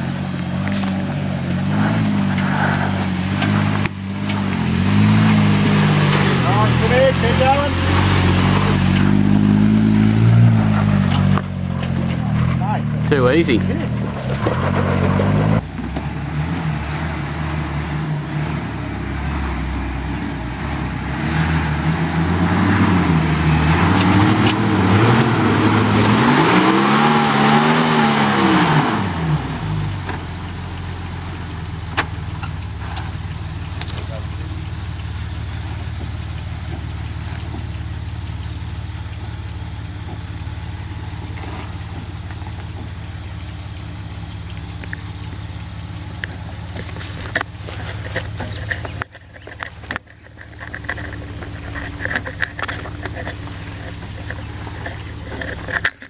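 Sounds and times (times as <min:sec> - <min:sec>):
steady engine note: 0:00.0 - 0:30.1
engine revving under load: 0:00.0 - 0:56.0.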